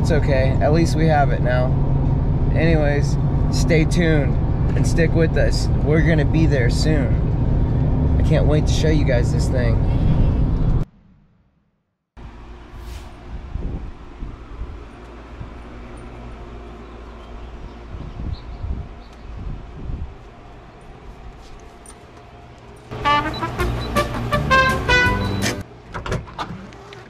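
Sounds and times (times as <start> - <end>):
low outdoor rumble: 0.0 - 26.0
tune of clear notes: 22.9 - 25.6.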